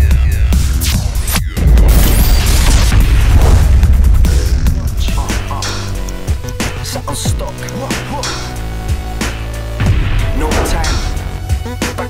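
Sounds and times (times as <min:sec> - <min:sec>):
electronic music with heavy bass: 0:00.0 - 0:12.0
booming hit: 0:01.5 - 0:07.6, 0:08.2 - 0:11.5.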